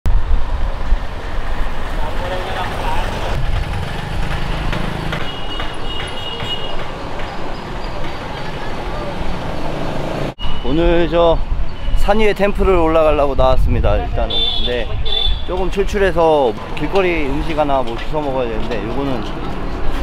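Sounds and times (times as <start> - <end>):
traffic rumble: 0.1 - 20.0
people's voices: 5.6 - 9.6, 12.3 - 20.0.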